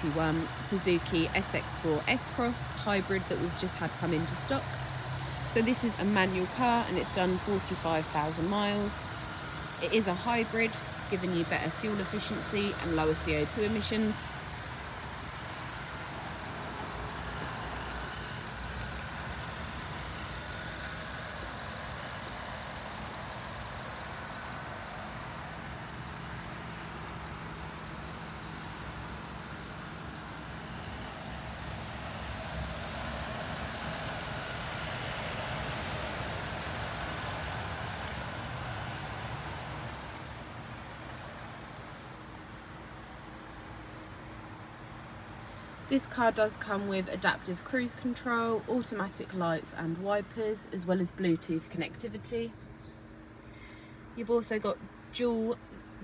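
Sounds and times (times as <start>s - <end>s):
car engine idling: 0.0s - 50.5s
open-air background noise: 0.0s - 56.0s.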